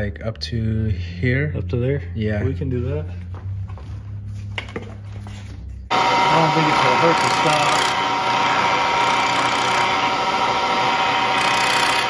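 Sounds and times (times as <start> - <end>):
milling machine humming: 5.9 - 12.0.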